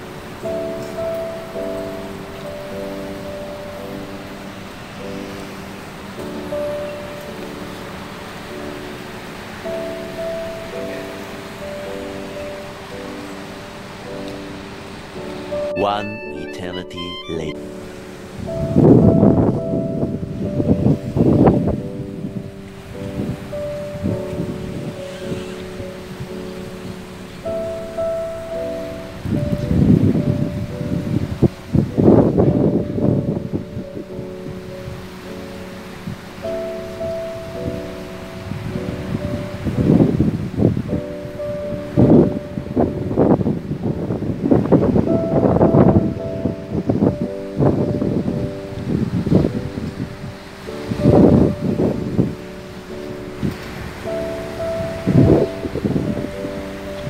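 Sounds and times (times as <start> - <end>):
music of slowly changing chords: 0.0 - 57.0
wind buffeting the microphone: 18.2 - 57.0.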